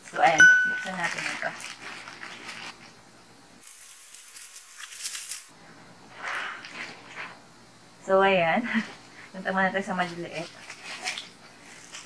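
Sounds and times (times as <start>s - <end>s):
plastic pouch crinkling: 0.8s - 2.9s, 3.6s - 5.5s.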